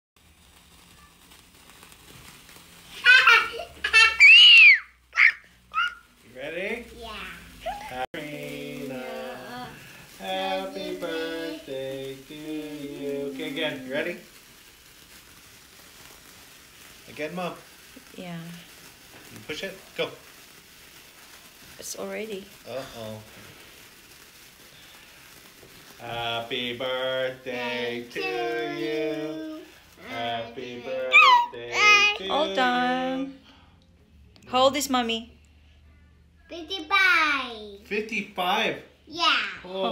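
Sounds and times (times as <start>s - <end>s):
sparklers fizzing and crackling: 0.2s - 39.9s
high-pitched squeal: 30.3s - 32.1s.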